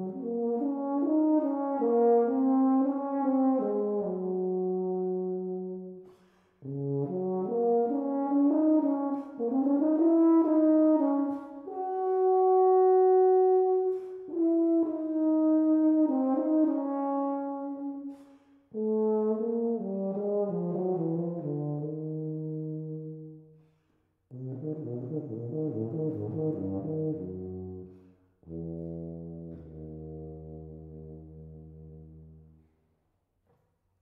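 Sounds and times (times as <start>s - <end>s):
tuba playing: 0.0s - 23.7s, 24.3s - 32.8s.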